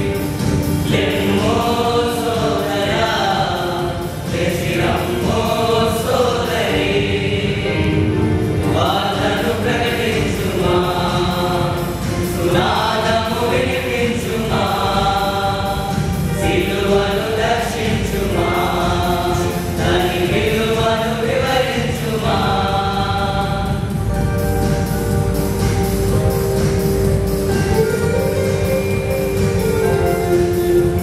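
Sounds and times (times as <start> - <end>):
lead voice on a microphone: 0.0 - 25.2
men's choir singing: 0.0 - 25.7.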